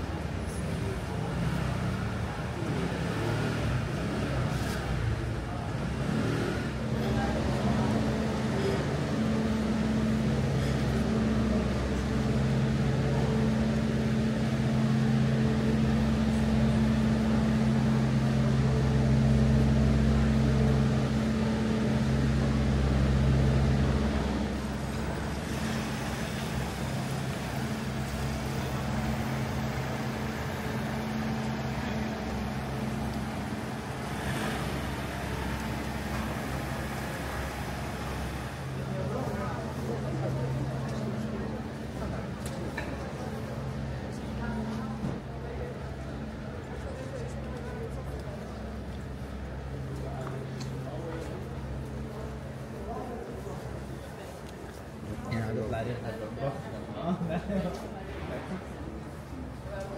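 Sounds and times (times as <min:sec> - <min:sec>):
pedestrians talking: 0:00.0 - 0:59.9
vehicle engine humming: 0:00.0 - 0:59.9.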